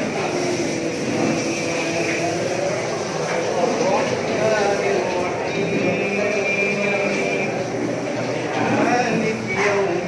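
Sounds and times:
man chanting recitation: 0.0s - 10.0s.

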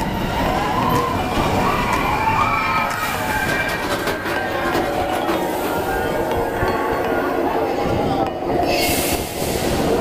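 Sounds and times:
roller coaster wheels rumbling: 0.0s - 10.0s.

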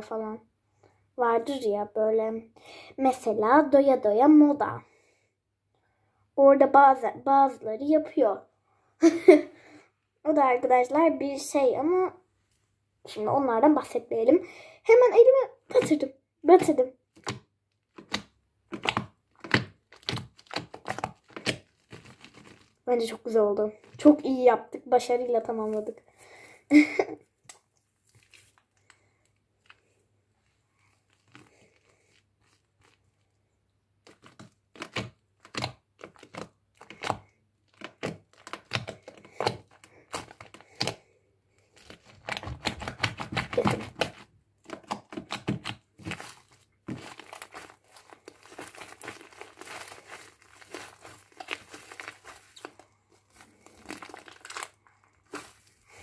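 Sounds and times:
slime squelching and popping: 15.7s - 22.8s, 27.4s - 30.0s, 30.8s - 56.0s.

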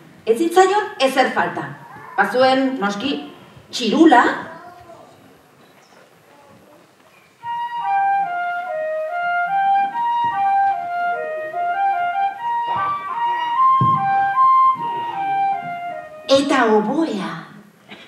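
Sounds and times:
solo flute melody: 7.4s - 16.6s.

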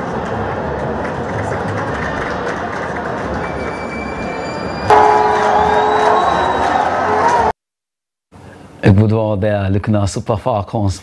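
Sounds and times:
stadium crowd cheering: 0.1s - 7.6s
horn notes: 4.9s - 7.5s.

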